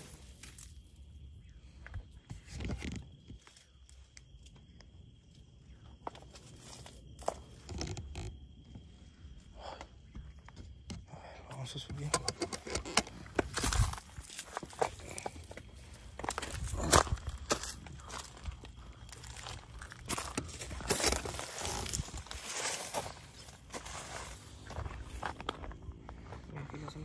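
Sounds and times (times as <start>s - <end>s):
footsteps on rock and leaves: 12.8s - 26.5s.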